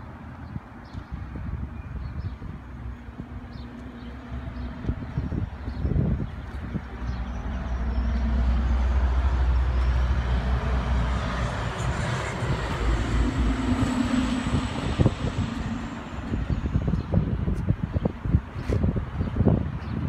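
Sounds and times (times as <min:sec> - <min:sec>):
vehicle engine and road rumble: 0:00.0 - 0:20.0.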